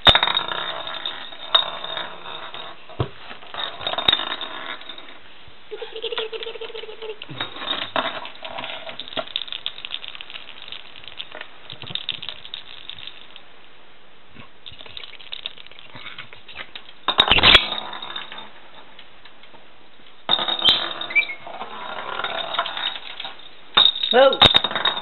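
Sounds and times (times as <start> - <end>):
plastic toy ball rattling: 5.8 - 13.5, 14.6 - 18.6, 20.3 - 25.0.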